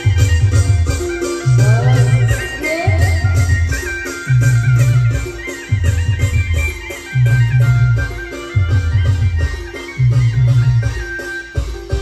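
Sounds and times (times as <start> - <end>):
drums: 0.0 - 12.0
high keyboard melody: 0.0 - 12.0
repeating bass line: 1.5 - 11.1.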